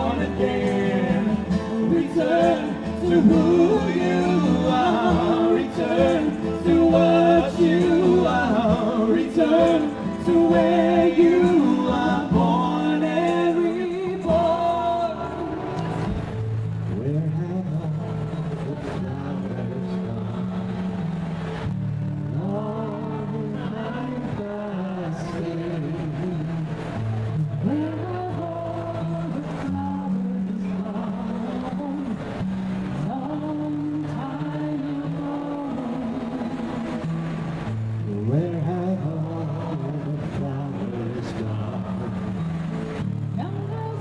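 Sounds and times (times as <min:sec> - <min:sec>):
acoustic guitar chords: 0:00.0 - 0:44.0.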